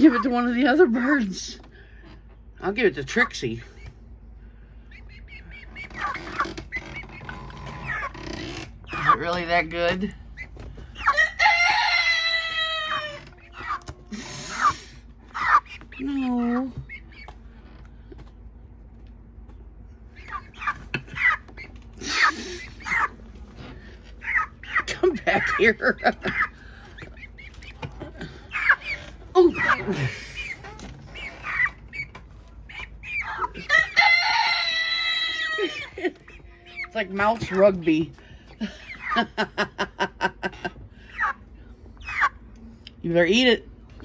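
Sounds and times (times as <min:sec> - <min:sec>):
young chicken calling: 0:04.8 - 0:09.4, 0:10.2 - 0:17.6, 0:20.0 - 0:39.7, 0:41.0 - 0:42.5
chicken long drawn-out call: 0:11.0 - 0:15.6, 0:33.1 - 0:36.9.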